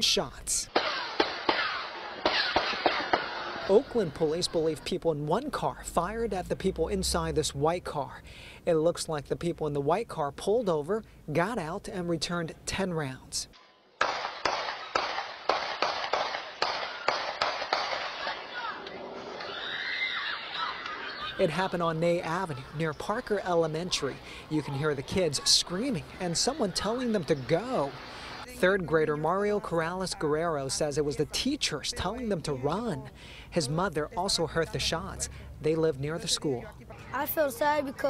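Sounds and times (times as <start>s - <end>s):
gunshots: 0.7s - 4.2s, 14.0s - 18.8s
distant children screaming: 17.9s - 28.5s.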